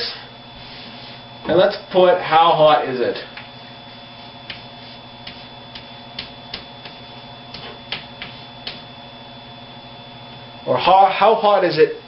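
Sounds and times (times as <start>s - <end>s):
low electrical hum: 0.0s - 12.0s
chalk clicking on blackboard: 4.5s - 8.8s.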